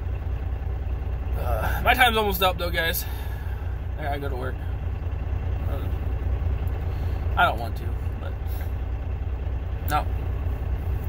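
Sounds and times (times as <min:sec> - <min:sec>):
vehicle engine idling: 0:00.0 - 0:11.0.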